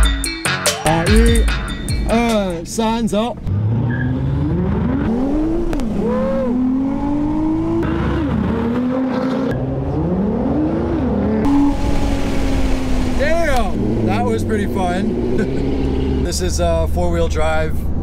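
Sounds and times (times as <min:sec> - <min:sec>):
sports car engine accelerating: 0:03.4 - 0:18.0.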